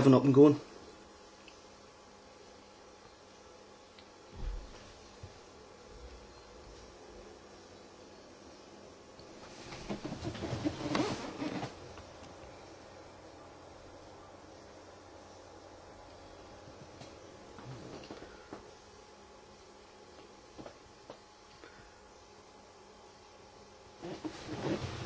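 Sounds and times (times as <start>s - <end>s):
rustling: 9.2s - 12.7s, 24.0s - 25.0s.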